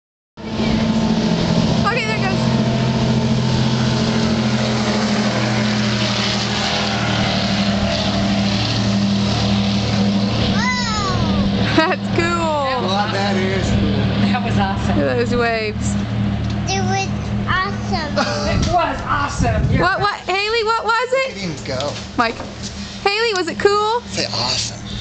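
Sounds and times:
powerboat engines at high speed: 0:00.4 - 0:25.0.

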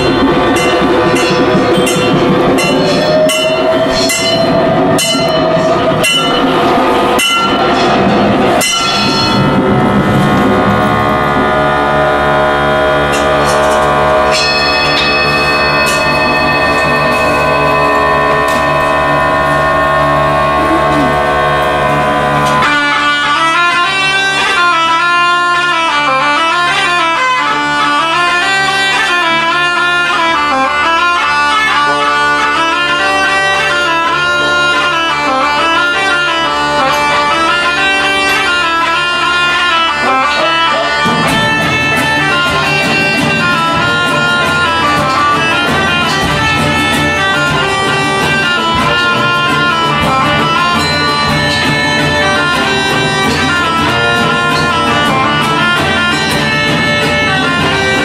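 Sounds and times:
singing bowls ringing: 0:00.0 - 0:22.8, 0:50.3 - 0:55.2
hand percussion strikes: 0:00.0 - 0:22.9, 0:40.4 - 0:58.0
bagpipes playing a melody: 0:00.0 - 0:58.0
sustained drone: 0:00.0 - 0:58.0.

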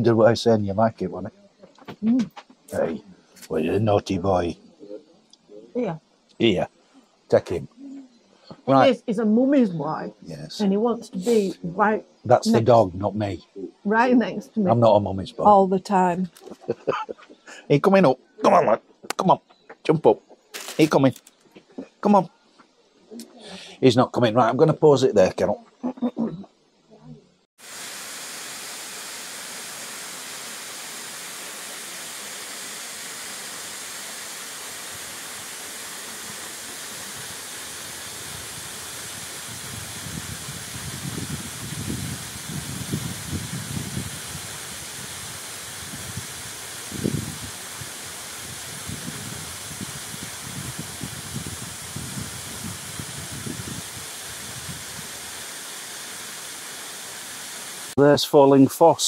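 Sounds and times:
waterfall rushing: 0:27.6 - 0:58.0.

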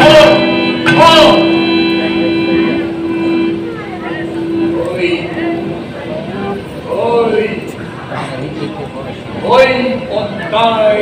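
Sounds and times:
man speaking in a hall: 0:00.0 - 0:03.4, 0:04.1 - 0:11.0
steady held musical tone: 0:00.0 - 0:11.0.

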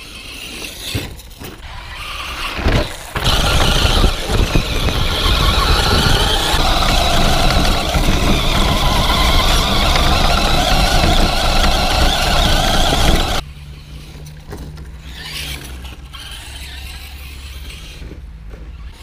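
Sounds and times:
tyres rumbling over dirt: 0:00.5 - 0:13.4
electric motor whine: 0:01.6 - 0:13.4.

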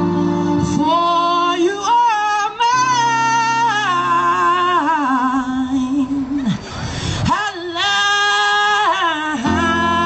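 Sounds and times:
instrumental accompaniment: 0:00.0 - 0:01.5
woman singing into microphone: 0:00.4 - 0:06.6, 0:07.2 - 0:10.0.

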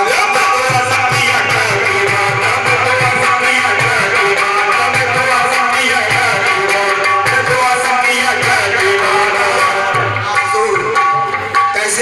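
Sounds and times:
harmonium chords: 0:00.0 - 0:12.0
tabla beat: 0:00.0 - 0:12.0.

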